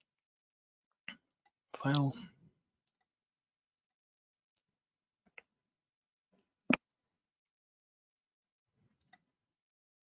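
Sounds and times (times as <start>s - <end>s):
man speaking: 1.8s - 2.3s.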